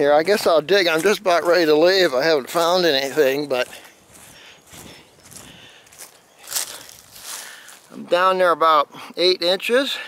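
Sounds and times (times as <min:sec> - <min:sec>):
rustling on grass and leaves: 0:00.0 - 0:08.4.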